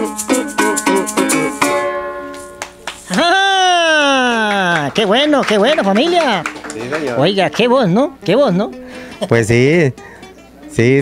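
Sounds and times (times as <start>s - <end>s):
maracas shaking: 0.0s - 3.3s
cuatro strumming: 0.0s - 11.0s
person exclaiming: 3.1s - 5.0s.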